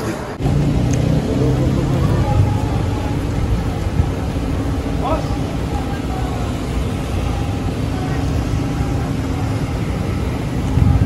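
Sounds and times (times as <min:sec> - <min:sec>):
faint voices: 0:00.0 - 0:11.0
vehicle engine idling: 0:00.4 - 0:11.0.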